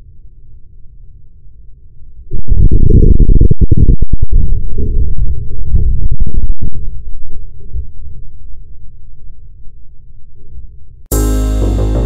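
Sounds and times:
loud distorted low rumble: 0:11.1 - 0:12.0.

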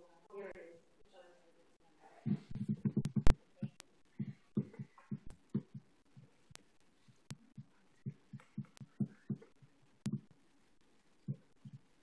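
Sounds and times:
muffled low thumps: 0:02.3 - 0:06.3, 0:10.1 - 0:10.3
sharp clicks: 0:02.3 - 0:10.4.

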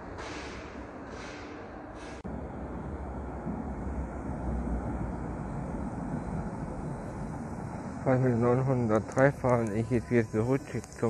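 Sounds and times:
tram wheels rumbling on rail: 0:00.0 - 0:11.0.

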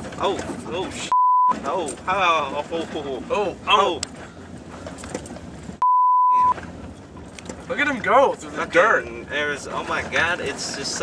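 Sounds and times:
car vehicle noise: 0:00.0 - 0:11.0
censor bleep: 0:01.1 - 0:01.6, 0:05.8 - 0:06.6.

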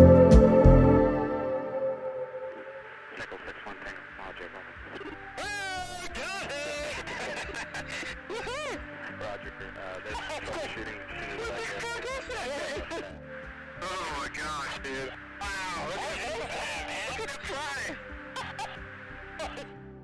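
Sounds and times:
sustained music chord: 0:00.0 - 0:03.0
faint swooping voices: 0:01.6 - 0:19.8.

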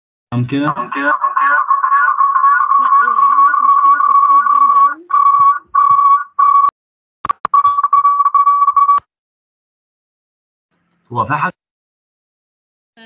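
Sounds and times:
faint voice: 0:00.4 - 0:05.6
whistle-like microphone tone: 0:02.2 - 0:06.7.

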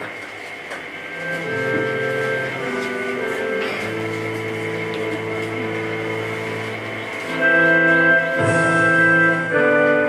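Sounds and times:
funeral music sustained chord: 0:01.2 - 0:10.0.

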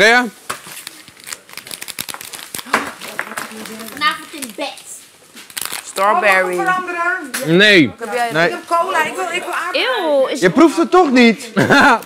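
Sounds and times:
plastic wrappers crinkling: 0:00.4 - 0:07.2.

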